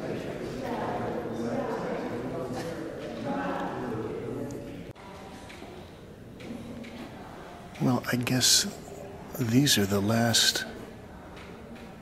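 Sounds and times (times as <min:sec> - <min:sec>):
people talking indistinctly: 0:00.0 - 0:11.8.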